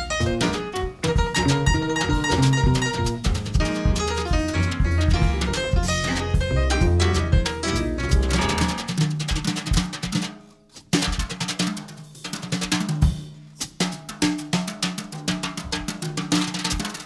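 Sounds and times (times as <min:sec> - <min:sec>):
upright double bass notes: 0:00.0 - 0:08.9.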